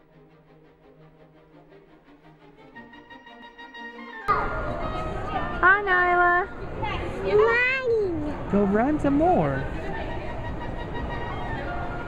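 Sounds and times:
toddler making wordless sounds: 7.0 - 8.4.

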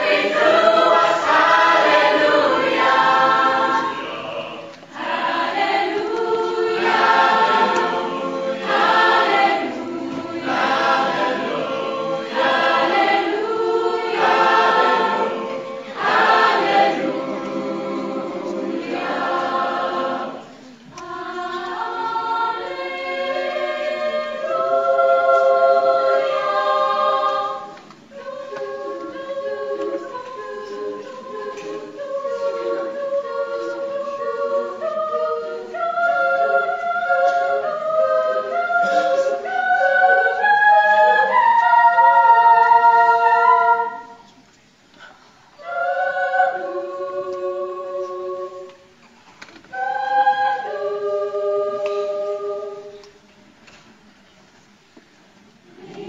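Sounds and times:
youth choir singing: 0.0 - 44.4, 45.0 - 53.7, 55.6 - 56.0.

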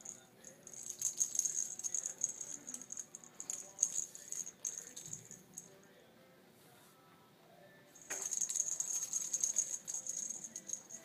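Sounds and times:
bell toy ball jingling and rattling: 0.0 - 5.8, 8.0 - 11.0.

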